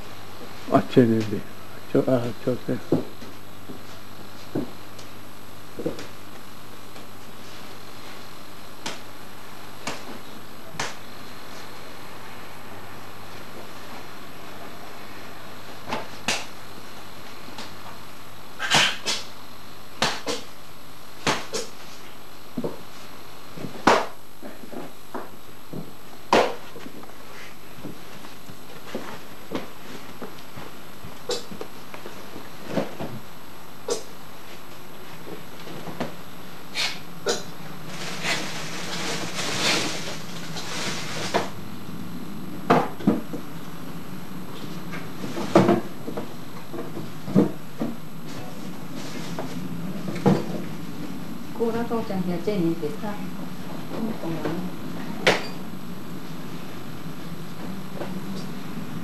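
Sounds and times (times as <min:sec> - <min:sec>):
background hum and hiss: 0:00.0 - 0:59.0.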